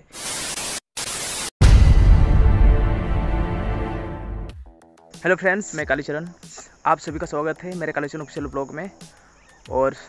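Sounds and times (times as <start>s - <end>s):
tv static hiss: 0.0s - 1.5s.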